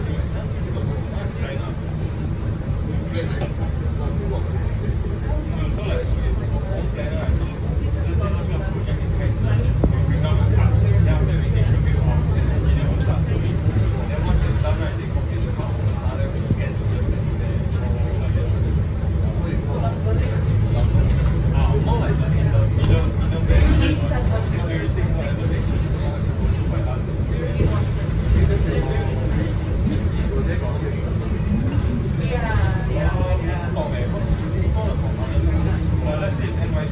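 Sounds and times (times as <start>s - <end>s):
bus engine and drivetrain: 0.0s - 36.9s
road noise: 0.0s - 36.9s.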